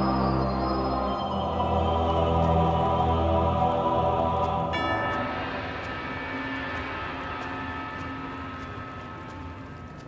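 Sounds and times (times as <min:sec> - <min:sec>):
low ambient drone: 0:00.0 - 0:10.0.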